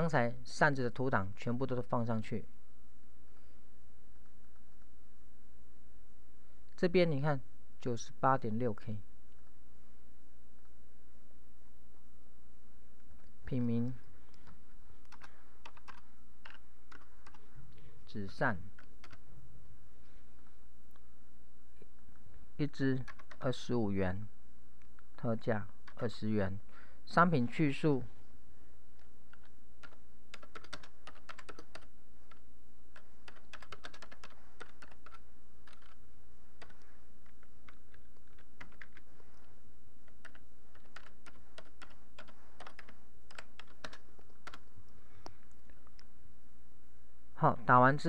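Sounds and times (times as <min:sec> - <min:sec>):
steady low hum: 0:00.0 - 0:48.0
computer keyboard typing: 0:14.3 - 0:17.4, 0:18.8 - 0:19.2, 0:23.0 - 0:23.5, 0:25.8 - 0:26.1, 0:29.3 - 0:36.0, 0:36.6 - 0:39.1, 0:40.0 - 0:44.7.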